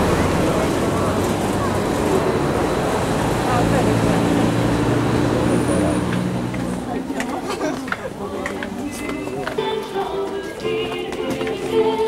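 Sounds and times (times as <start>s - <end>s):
indistinct voices: 0.0s - 12.0s
road traffic rumble: 0.0s - 12.0s
vehicle engine humming: 0.0s - 12.0s.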